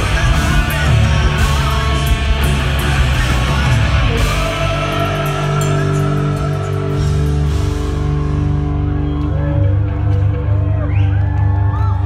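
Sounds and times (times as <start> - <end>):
rock band sustained low chord: 0.0 - 11.0
crowd whooping and shouting: 2.8 - 12.0.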